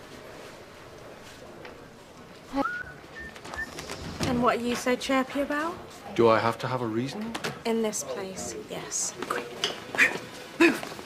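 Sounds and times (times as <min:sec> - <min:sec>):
person whistling: 0:02.6 - 0:03.8.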